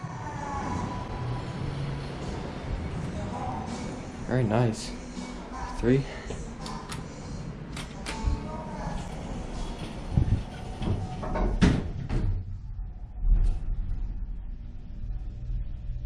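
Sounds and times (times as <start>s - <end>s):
elevator doors sliding shut: 6.5s - 12.5s
loud door clunk: 10.6s - 12.5s.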